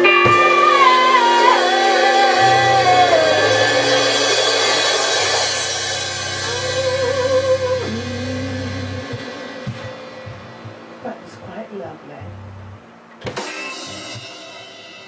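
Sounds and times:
rock band final chord: 0.0 - 10.7
guitar sliding down in pitch: 0.0 - 10.8
cymbal wash: 0.0 - 11.2, 13.3 - 15.0
low bass note: 0.0 - 12.9.

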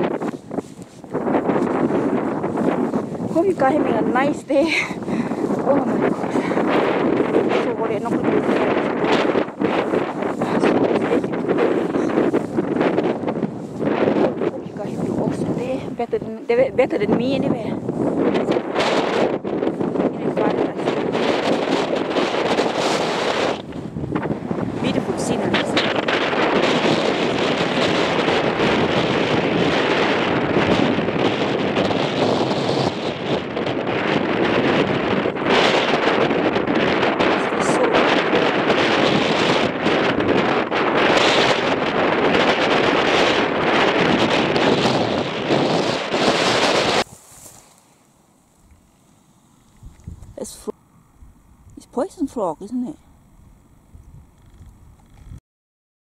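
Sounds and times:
strong wind buffeting microphone: 0.0 - 55.4.

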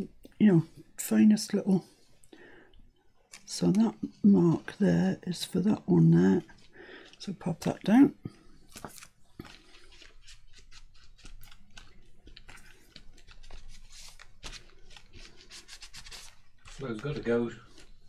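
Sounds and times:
paper rubbing and rustling: 8.7 - 18.0.

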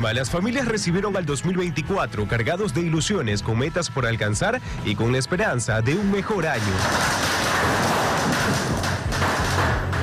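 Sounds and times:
fire crackling with pops: 6.4 - 10.0.

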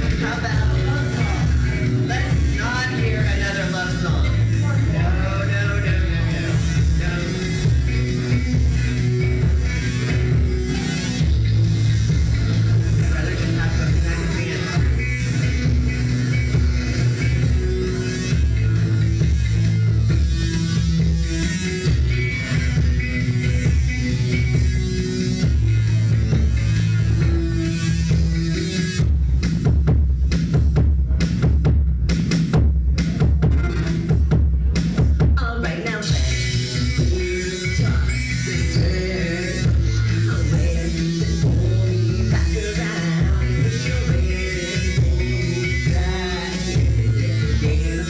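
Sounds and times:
heavy bass line: 0.0 - 48.0
live rock band playing: 0.0 - 48.0.

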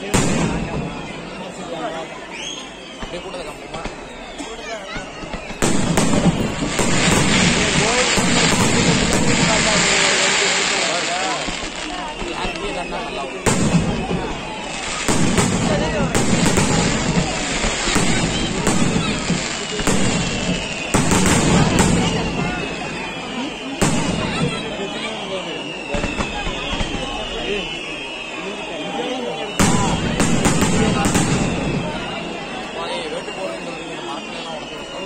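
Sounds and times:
fireworks bursting and crackling: 0.0 - 28.7, 29.3 - 35.0
people calling out: 2.1 - 35.0.

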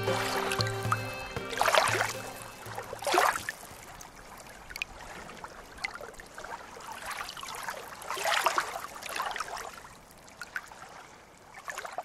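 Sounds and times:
water splashing and trickling: 0.0 - 12.0.

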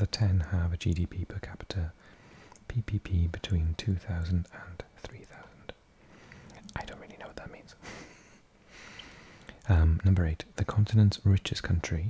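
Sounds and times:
soft whispered breaths: 1.5 - 3.3, 3.9 - 9.8
faint clicks: 2.5 - 2.7.

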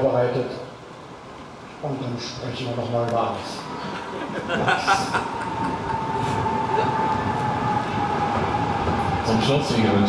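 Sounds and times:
tram rumbling: 0.0 - 10.0.

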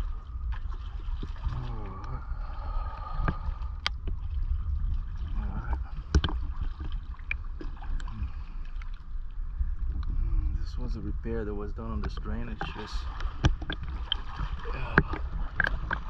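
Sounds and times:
wind on microphone: 0.0 - 7.2, 9.2 - 16.0
low rumble of water: 0.0 - 16.0.

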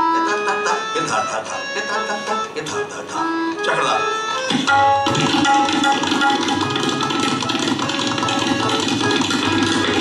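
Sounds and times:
harmonium melody: 0.0 - 10.0
tabla strokes: 4.4 - 10.0.

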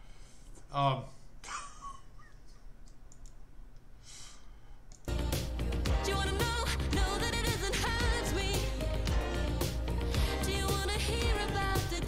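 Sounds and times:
short breath: 0.0 - 0.6, 4.0 - 4.9
faint sharp clicks: 2.3 - 3.9.

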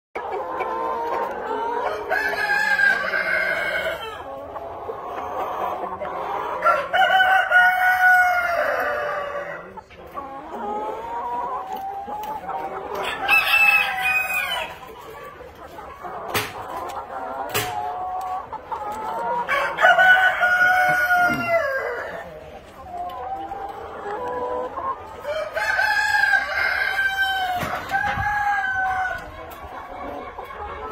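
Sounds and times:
hens clucking: 0.2 - 30.9
roosters crowing: 1.8 - 4.2, 6.6 - 9.6, 13.0 - 14.8, 19.4 - 22.3, 25.2 - 29.3
rooster crowing: 19.5 - 21.8.

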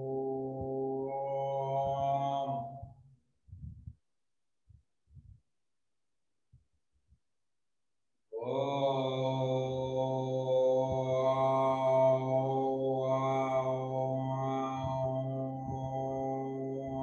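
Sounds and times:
deep chant-like drone: 0.0 - 2.9, 8.4 - 17.0.

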